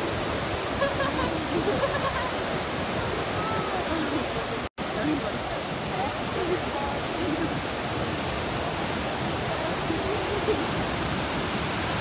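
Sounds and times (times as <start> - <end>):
ocean surf breaking: 0.0 - 12.0.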